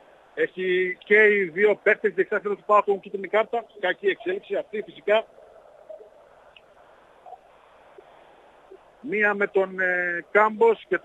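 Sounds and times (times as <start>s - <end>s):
faint steady background noise: 0.0s - 11.0s.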